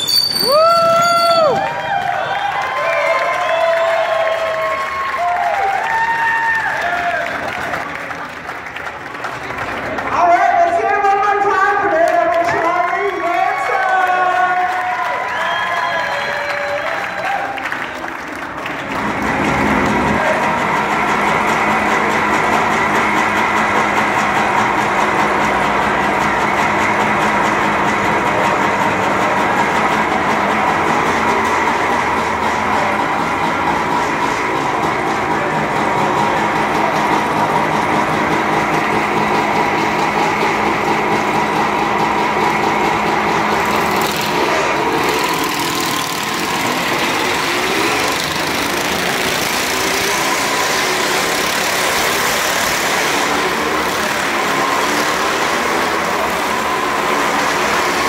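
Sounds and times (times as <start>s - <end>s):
motorcycle engines idling: 16.3s - 58.0s.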